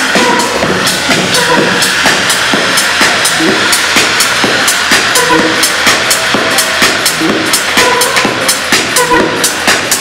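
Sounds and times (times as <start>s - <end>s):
short synth notes: 0.0s - 9.6s
techno kick drum: 0.0s - 10.0s.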